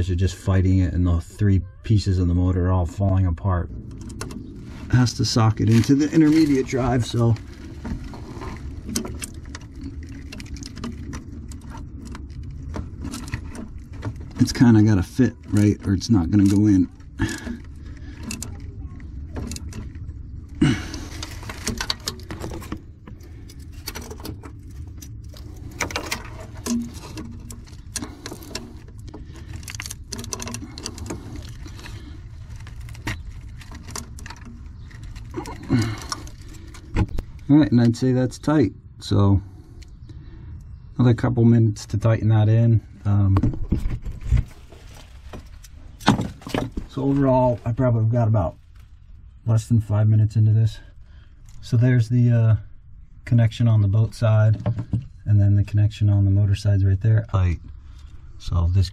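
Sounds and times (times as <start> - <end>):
steady low rumble: 0.0 - 58.9
light rustling: 43.3 - 49.4.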